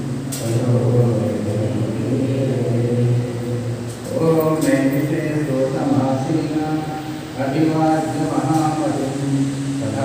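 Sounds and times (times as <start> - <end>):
man chanting low note: 0.0 - 10.0.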